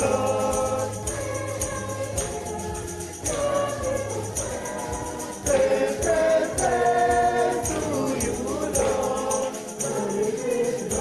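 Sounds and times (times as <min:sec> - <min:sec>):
choir singing a hymn: 0:00.0 - 0:11.0
steady percussive beat: 0:00.0 - 0:11.0.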